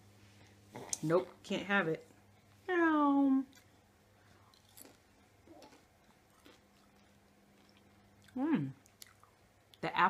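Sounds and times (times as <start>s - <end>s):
soft chewing clicks: 3.5s - 9.8s.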